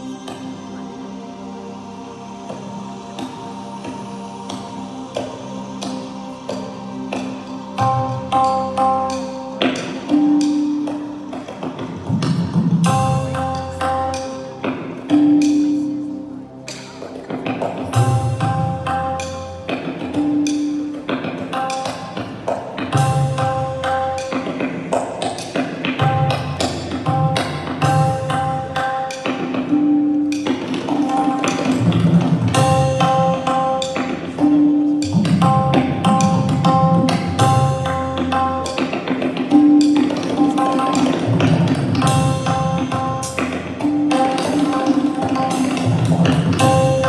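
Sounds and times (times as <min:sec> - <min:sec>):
tabla playing: 0:00.0 - 0:47.0.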